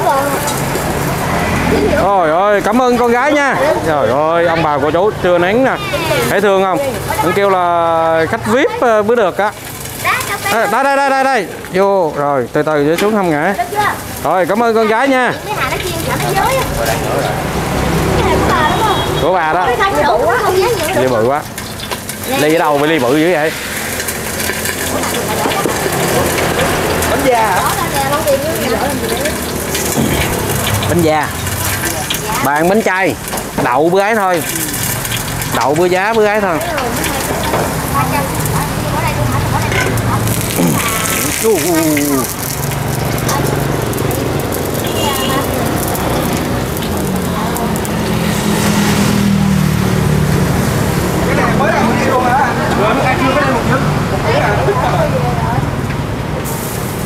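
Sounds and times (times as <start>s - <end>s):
batter sizzling in woks: 0.0s - 57.0s
indistinct voices: 0.0s - 57.0s
vehicle engine hum: 15.4s - 33.7s, 34.4s - 57.0s.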